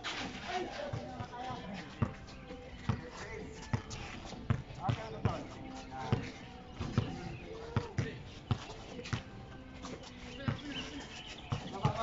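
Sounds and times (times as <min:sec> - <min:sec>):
basketball dribbling on hard court: 0:02.0 - 0:09.3, 0:10.4 - 0:12.0.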